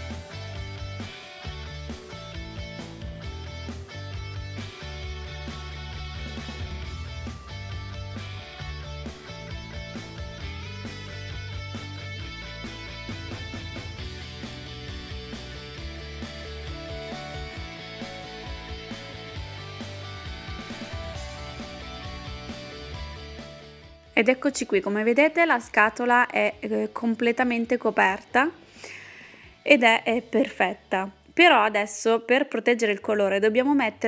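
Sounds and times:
bass line: 0.0 - 24.1
guitar instrumental music: 0.0 - 24.8.

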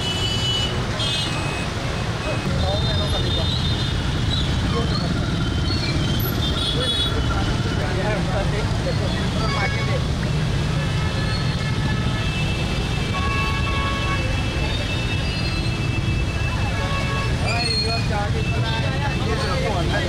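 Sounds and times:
idling motorcycles and vehicles: 0.0 - 20.0
people talking: 2.2 - 3.7, 4.6 - 5.2, 6.6 - 10.9, 16.4 - 20.0
vehicle horns: 6.0 - 7.8, 9.1 - 19.6.

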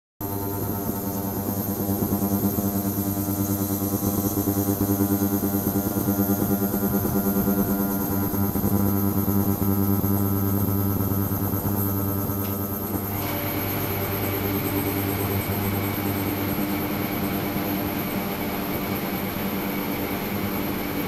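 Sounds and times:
pulsing buzzing hum: 0.2 - 21.0.

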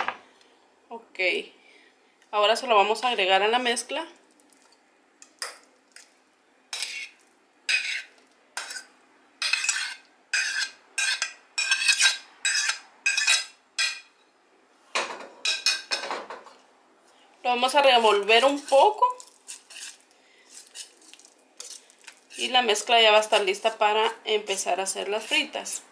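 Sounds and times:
fork scraping a ceramic plate: 6.7 - 14.0, 18.0 - 22.9.

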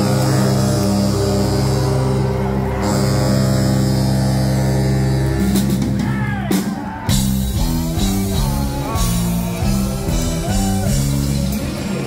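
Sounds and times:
live band holding a chord: 0.0 - 12.0.

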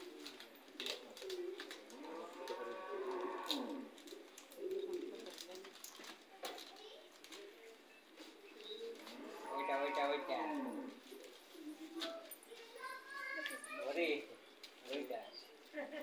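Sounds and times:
people talking indistinctly: 11.6 - 15.7.

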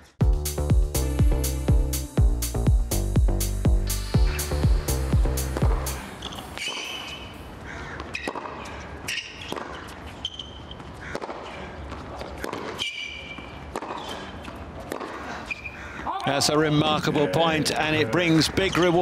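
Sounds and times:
ball bouncing: 5.4 - 7.0, 8.0 - 10.0, 10.7 - 15.2
tennis ball struck by racquets: 5.4 - 7.3, 8.0 - 15.6
shoes squeaking on court: 5.4 - 15.8.

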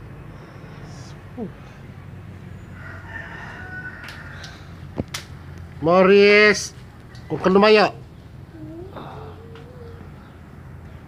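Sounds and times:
distant rooster crowing: 2.5 - 5.0.

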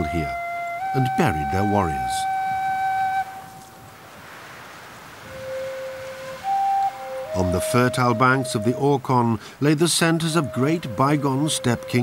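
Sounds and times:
solo flute playing slow notes: 0.0 - 3.9, 5.2 - 9.0, 10.1 - 12.0.

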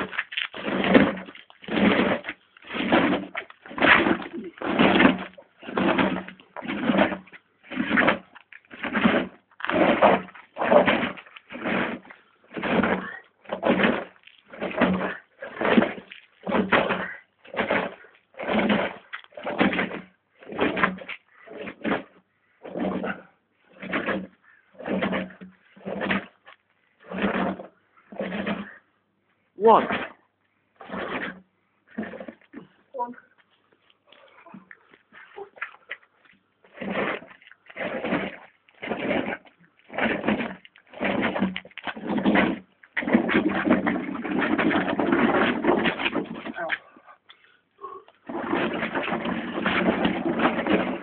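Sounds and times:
person breathing hard with groans: 46.9 - 48.2.

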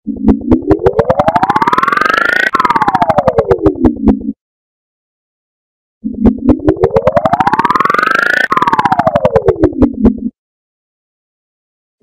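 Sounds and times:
pulsing electronic logo tone: 0.0 - 4.4, 6.0 - 10.3.

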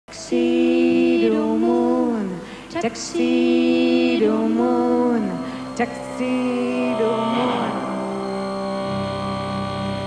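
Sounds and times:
sustained synthesizer chord: 0.6 - 10.0.

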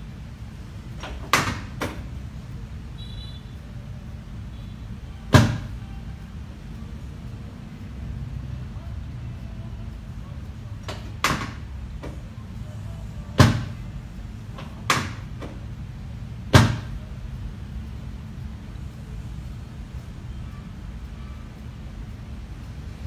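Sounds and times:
steady low hum: 0.0 - 23.0
sharp knocks: 5.3 - 5.7, 14.8 - 15.6, 16.5 - 17.0.

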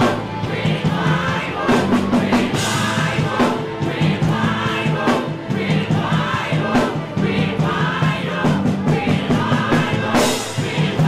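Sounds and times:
congregation singing: 0.0 - 11.0
keyboard accompaniment: 0.0 - 11.0.

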